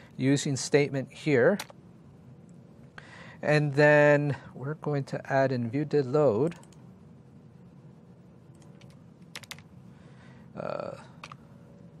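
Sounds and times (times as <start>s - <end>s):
faint steady hum: 0.0s - 12.0s
keyboard keystrokes: 8.6s - 9.6s.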